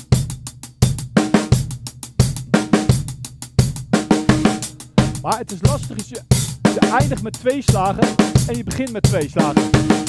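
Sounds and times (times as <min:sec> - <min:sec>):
drum kit groove: 0:00.0 - 0:10.0
strong low drum hits: 0:04.0 - 0:10.0.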